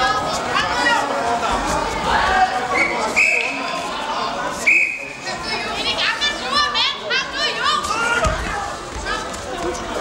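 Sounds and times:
crowd chatter in a large hall: 0.0s - 10.0s
referee's whistle blasts: 2.8s - 3.6s, 4.6s - 5.2s.

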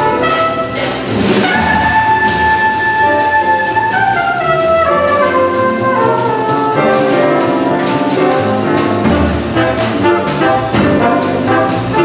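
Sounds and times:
jazz band playing: 0.0s - 12.0s
trumpet playing: 0.0s - 12.0s
cymbal crash: 0.8s - 2.8s.

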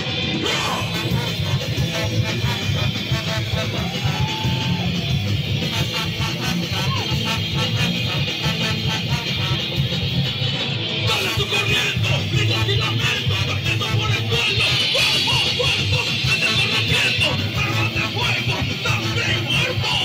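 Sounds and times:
live ska punk band playing: 0.0s - 20.0s.

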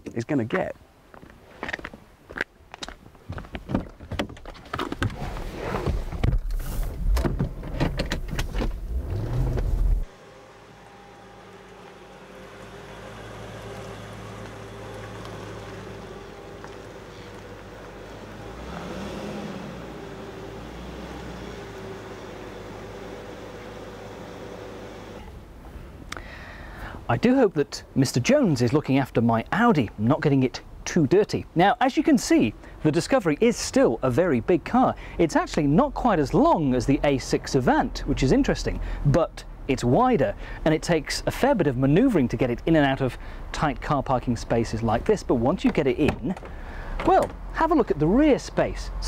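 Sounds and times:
quiet vehicle hum: 0.0s - 49.0s.

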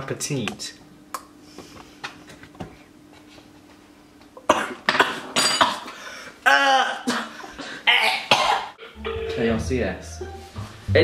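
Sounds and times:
man coughing: 6.6s - 8.8s.

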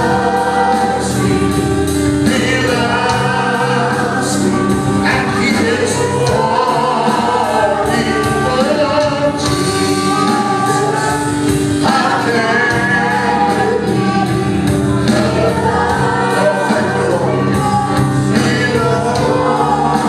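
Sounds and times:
band with keyboards and beat: 0.0s - 20.0s
singers singing: 0.0s - 20.0s.

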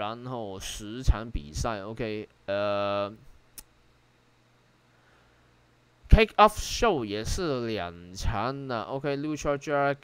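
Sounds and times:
sharp click: 3.5s - 3.8s
man saying uh: 6.1s - 10.0s.

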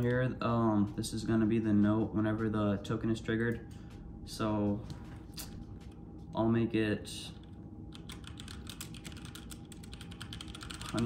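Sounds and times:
keyboard typing clicks: 7.9s - 11.0s.

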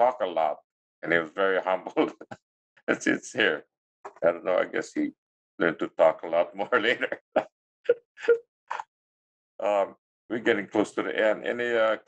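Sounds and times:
people laughing: 1.8s - 2.4s, 6.6s - 7.4s.

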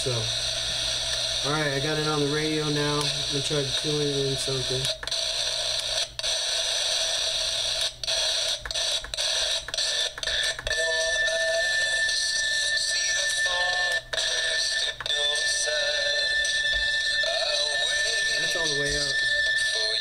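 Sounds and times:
faint radio station: 0.0s - 20.0s
radio static hissing: 0.0s - 20.0s
steady high tone: 10.4s - 20.0s.

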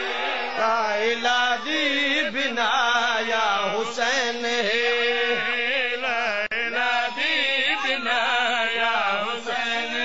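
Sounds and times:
man chanting: 0.6s - 10.0s.

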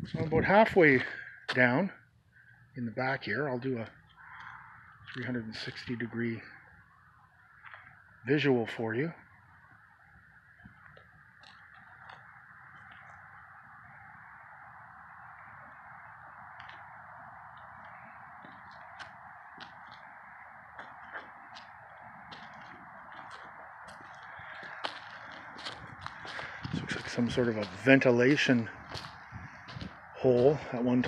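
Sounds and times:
footsteps on asphalt: 3.8s - 6.0s, 7.1s - 8.2s, 9.5s - 31.0s.

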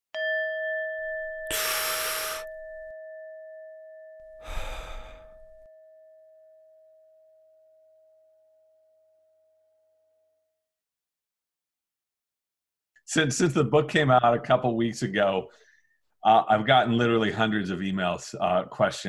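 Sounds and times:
long breath sounds: 1.4s - 2.9s, 4.2s - 5.7s, 15.5s - 16.1s.

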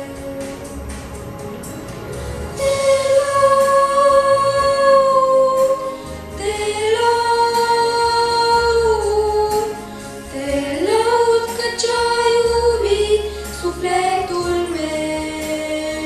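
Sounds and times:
boys singing into microphones: 2.6s - 16.0s.

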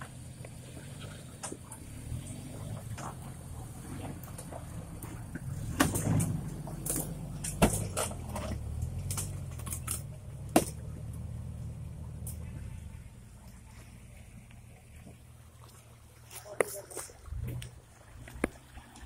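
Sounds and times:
engine running at low revs: 0.0s - 16.1s.

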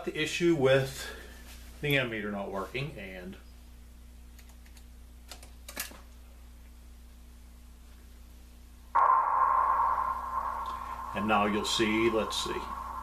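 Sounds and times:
radio static with whistle: 9.0s - 13.0s.

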